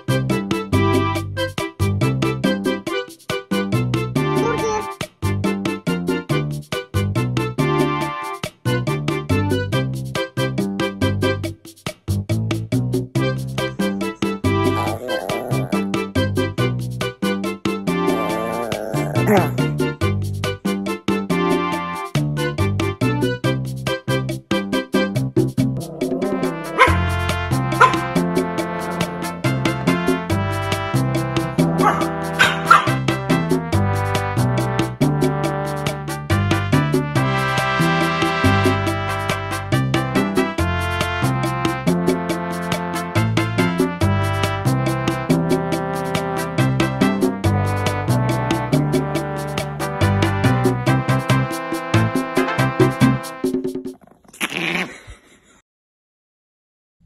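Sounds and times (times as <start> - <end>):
background music: 13.3 - 16.9, 17.8 - 22.1, 25.2 - 53.5
dog yipping: 14.7 - 15.8, 18.1 - 19.6, 25.9 - 27.1, 27.8 - 28.1, 31.8 - 33.0.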